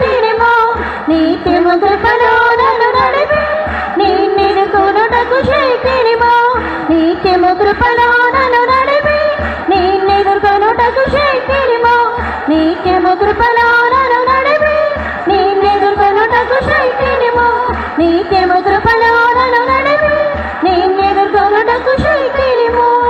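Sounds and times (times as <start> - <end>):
instrumental backing with beat: 0.0 - 23.0
person singing a song: 0.0 - 23.0.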